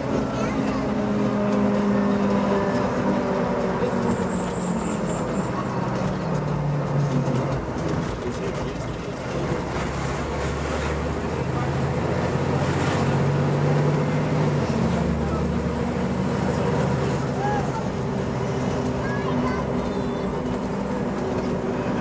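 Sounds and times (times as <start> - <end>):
diesel engine running: 0.0 - 22.0
road and tyre noise: 0.0 - 22.0.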